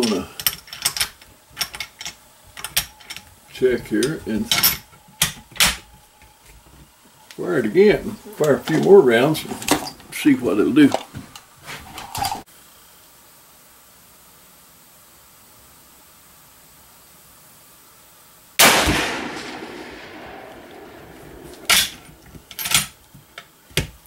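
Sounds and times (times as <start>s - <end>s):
rifle shot: 18.6s - 22.0s.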